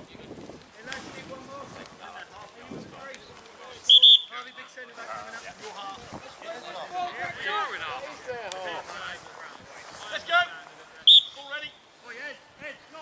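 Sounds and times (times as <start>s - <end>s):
referee whistle blast: 3.9s - 4.6s, 11.1s - 11.4s.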